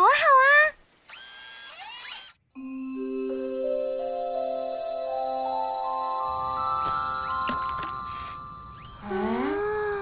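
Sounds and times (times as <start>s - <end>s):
chiming music cue: 2.6s - 9.3s.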